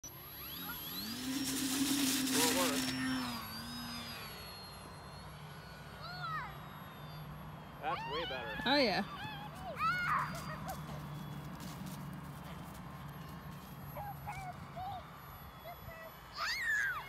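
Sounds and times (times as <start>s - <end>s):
electric motor and propeller whine: 0.0s - 17.0s.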